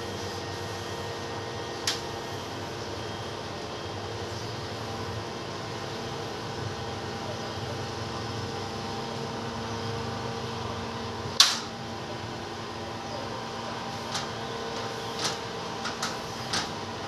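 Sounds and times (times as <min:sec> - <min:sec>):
steady machine hum: 0:00.0 - 0:17.0.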